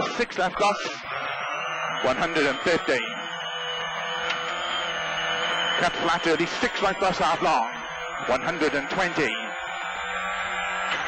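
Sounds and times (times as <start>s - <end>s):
rally car engine at high revs: 0.0s - 11.0s
thin high whine: 0.0s - 11.0s.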